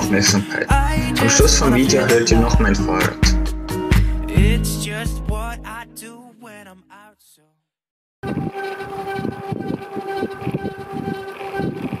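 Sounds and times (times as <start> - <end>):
bicycle hum: 8.2 - 12.0
wind buffeting microphone: 8.2 - 12.0.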